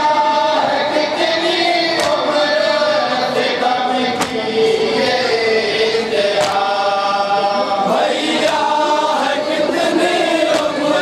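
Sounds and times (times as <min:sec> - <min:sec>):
men chanting in unison: 0:00.0 - 0:11.0
hand beating on chest: 0:02.0 - 0:02.2, 0:04.2 - 0:04.5, 0:06.4 - 0:06.7.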